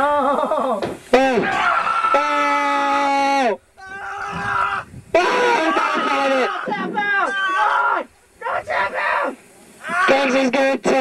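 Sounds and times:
man shouting excitedly: 0:01.1 - 0:10.9.

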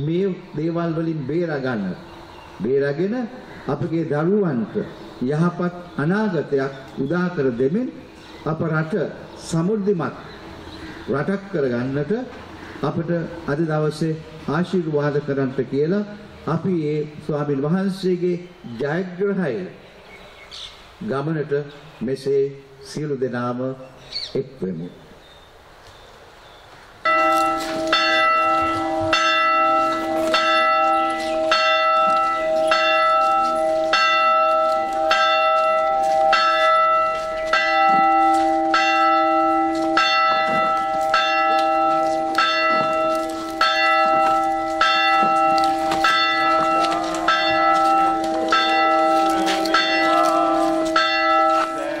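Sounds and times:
church bell ringing: 0:27.0 - 0:52.0.

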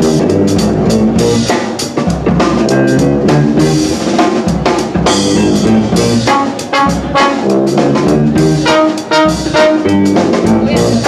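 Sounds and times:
trombone playing melody: 0:00.0 - 0:01.6, 0:02.6 - 0:04.1, 0:05.0 - 0:11.0
drum kit played with sticks: 0:00.0 - 0:11.0
jazz band playing: 0:00.0 - 0:11.0.

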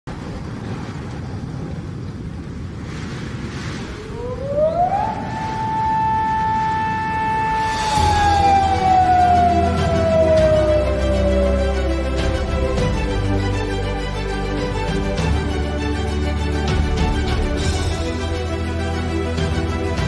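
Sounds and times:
gliding pure tone: 0:03.9 - 0:16.7
theme music with bass line: 0:07.0 - 0:20.0.

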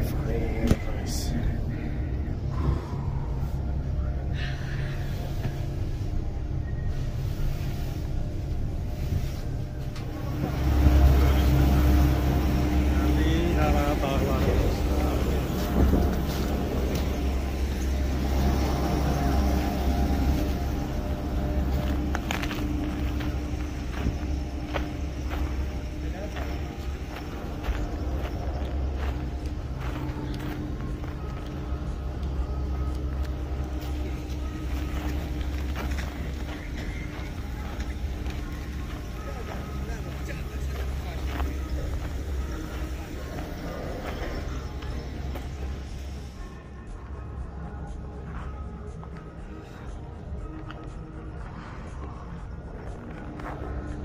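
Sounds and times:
faint hum: 0:00.0 - 0:54.0
faint voices: 0:00.0 - 0:54.0
low rumble: 0:00.0 - 0:54.0.

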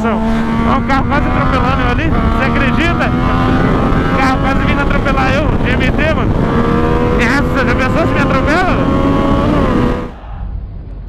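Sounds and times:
motorcycle engine running: 0:00.0 - 0:10.1.

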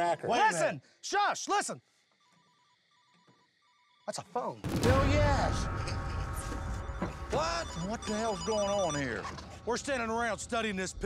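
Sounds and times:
phone ringtone beeps: 0:02.2 - 0:04.1, 0:06.2 - 0:09.7.

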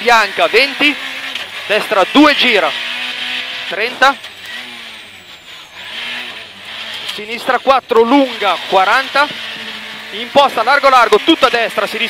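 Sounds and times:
rally car engine: 0:00.0 - 0:12.0
road and cabin noise: 0:00.0 - 0:12.0.

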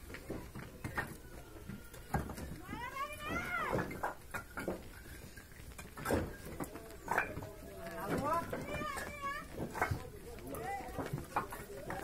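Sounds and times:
bricks clinking and knocking: 0:00.0 - 0:01.3, 0:01.9 - 0:12.0.

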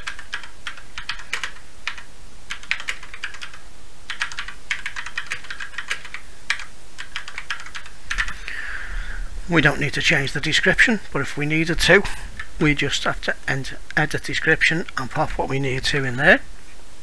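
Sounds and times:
typing on computer keyboard: 0:00.0 - 0:08.4.

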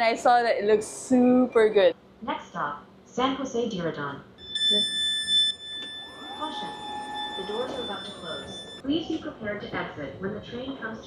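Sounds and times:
high-pitched electronic alert beep: 0:04.4 - 0:08.8.

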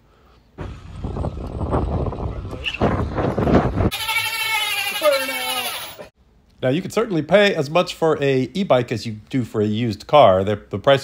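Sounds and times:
wind on microphone: 0:00.6 - 0:03.9
wavering bleat-like voice: 0:03.9 - 0:06.1.

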